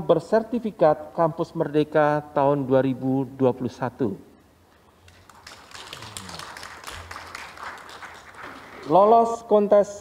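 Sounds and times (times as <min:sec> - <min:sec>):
light applause: 0:05.0 - 0:09.1.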